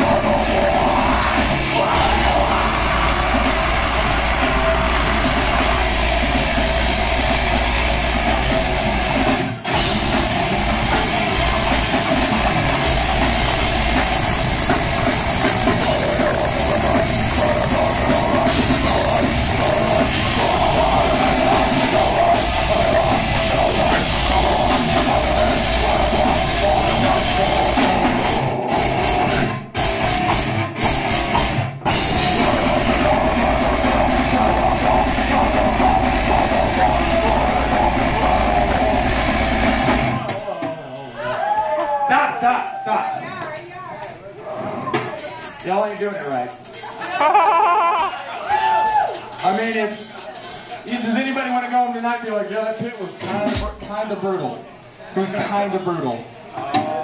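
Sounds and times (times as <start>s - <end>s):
vocalist singing: 0.0s - 8.8s, 13.3s - 29.4s, 31.9s - 40.6s
death metal band playing: 0.0s - 40.7s, 45.2s - 53.8s.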